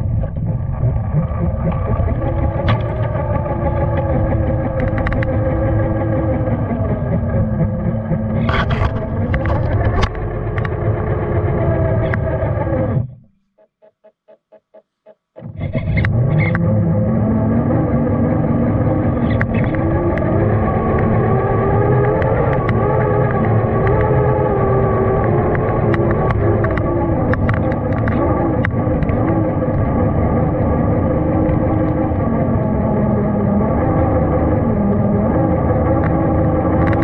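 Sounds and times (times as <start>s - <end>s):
electric motor and gear whine: 0.0s - 13.1s, 16.0s - 37.0s
sharp clicks: 1.7s - 11.2s, 11.8s - 12.4s, 18.7s - 33.6s, 35.8s - 37.0s.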